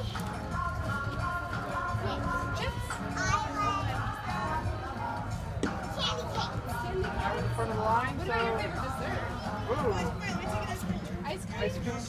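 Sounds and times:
background music with held notes: 0:00.0 - 0:12.0
children's voices: 0:02.0 - 0:04.2, 0:05.9 - 0:06.8.

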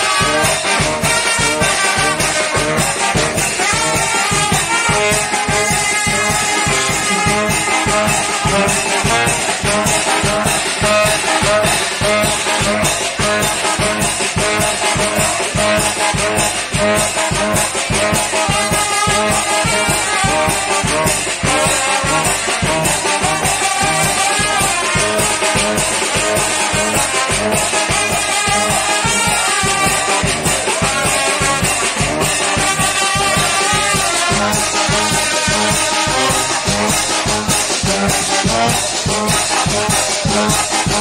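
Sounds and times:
dance music with brass: 0:00.0 - 0:41.0.

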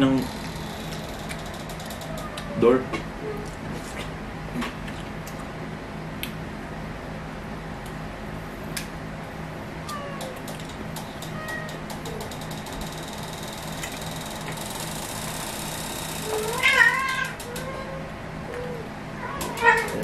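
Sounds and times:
cat meowing loudly: 0:16.2 - 0:18.0, 0:19.2 - 0:20.0.

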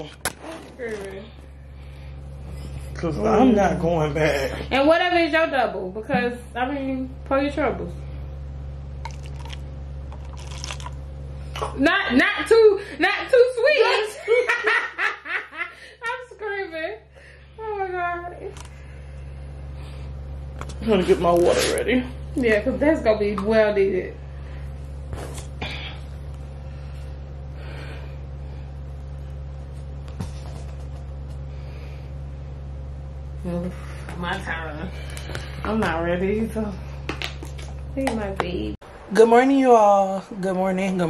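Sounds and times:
steady low room hum: 0:00.0 - 0:41.0
liquor splashing into paper cup: 0:09.0 - 0:11.0.

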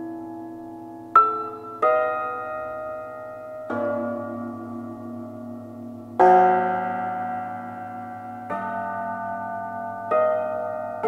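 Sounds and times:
cimbalom chords ringing: 0:00.0 - 0:11.0.

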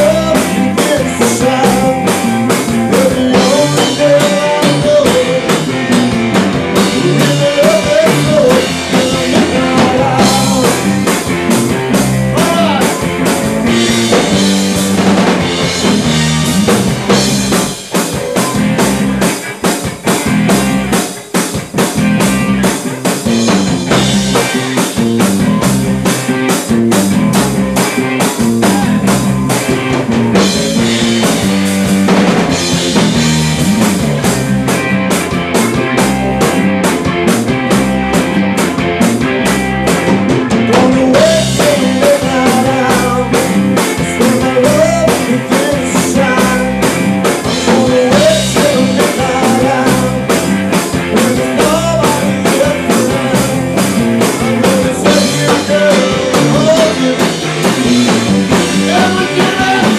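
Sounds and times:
bass guitar: 0:00.0 - 0:59.9
drum kit beat: 0:00.0 - 0:59.9
electric guitars: 0:00.0 - 0:59.9.

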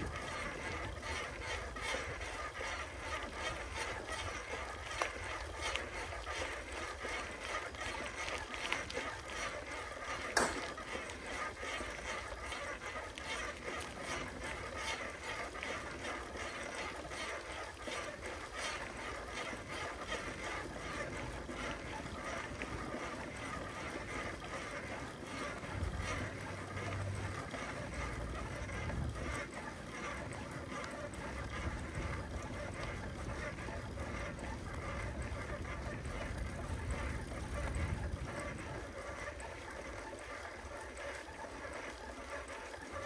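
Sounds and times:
bicycle tyre noise on road: 0:00.0 - 0:43.0
bike clicks and rattles: 0:00.0 - 0:43.0
wind rumble on microphone: 0:20.8 - 0:40.2.

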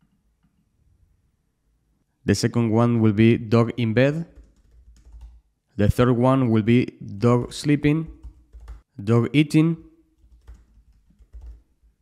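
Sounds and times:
typing on computer keyboard: 0:04.3 - 0:05.4, 0:08.1 - 0:08.9, 0:10.2 - 0:11.8.

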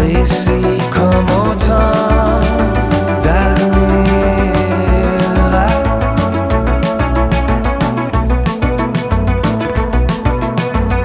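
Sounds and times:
indie rock instrumental: 0:00.0 - 0:11.0.

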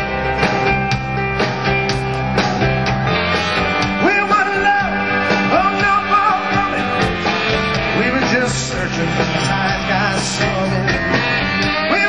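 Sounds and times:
live rock band playing: 0:00.0 - 0:12.0
sliding lead melody: 0:00.0 - 0:12.0.

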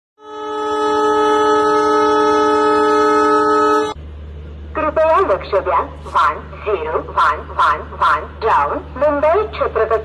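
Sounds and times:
train horn blast: 0:00.2 - 0:04.0.

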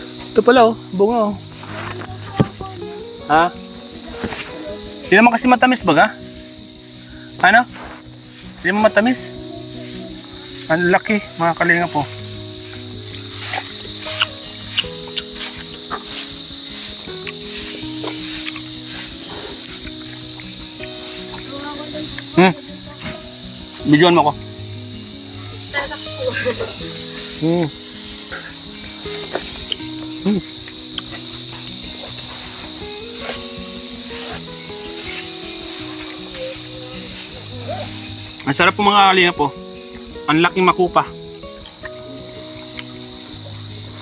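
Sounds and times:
high-pitched insect chirring: 0:00.0 - 0:44.0
soft held-note music: 0:00.0 - 0:44.0
light regular ticks: 0:07.8 - 0:23.2, 0:27.2 - 0:38.8, 0:41.4 - 0:43.1.

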